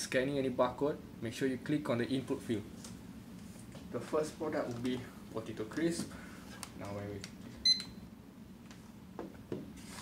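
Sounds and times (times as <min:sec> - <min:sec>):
barcode scanner beep: 0:07.6 - 0:08.0.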